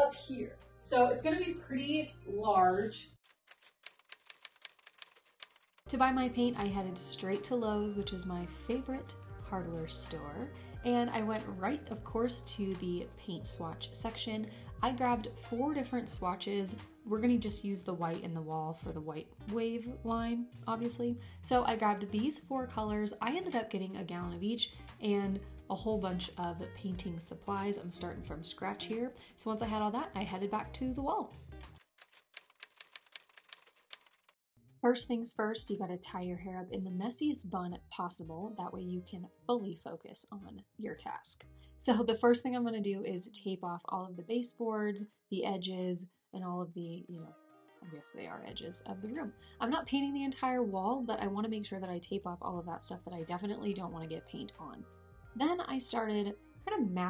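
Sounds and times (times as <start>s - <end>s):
quick keyboard key clicks: 3.4s - 5.8s, 32.0s - 34.3s
woman speaking: 5.9s - 31.3s, 34.8s - 47.3s, 47.9s - 54.8s, 55.4s - 57.0s.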